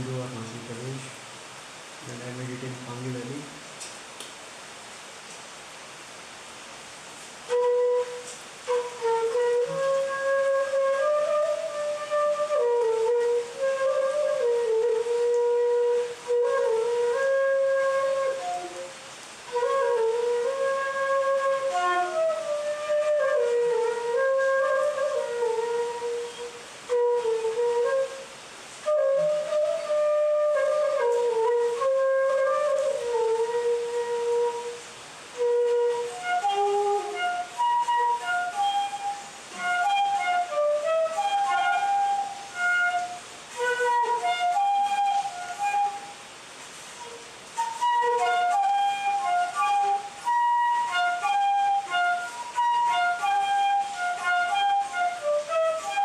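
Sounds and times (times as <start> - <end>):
bamboo flute melody: 0.0 - 1.1, 7.3 - 56.0.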